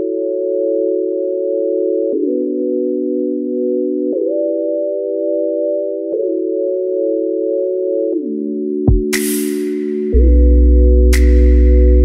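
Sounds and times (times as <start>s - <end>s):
held synthesizer chords: 0.0s - 12.0s.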